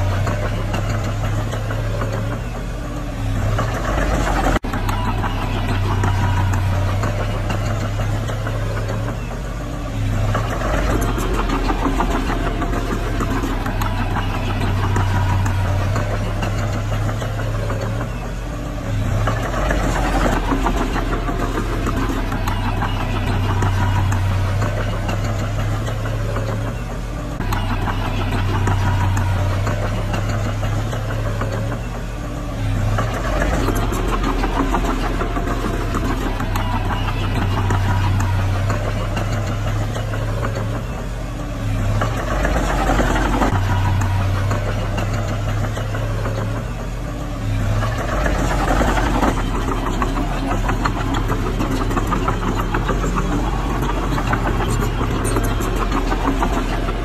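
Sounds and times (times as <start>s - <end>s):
bulldozer diesel engine running: 0.0s - 57.0s.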